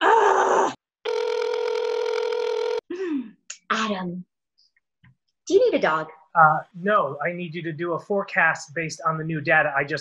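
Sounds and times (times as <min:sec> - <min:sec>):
electronic call tone: 0:01.0 - 0:02.9.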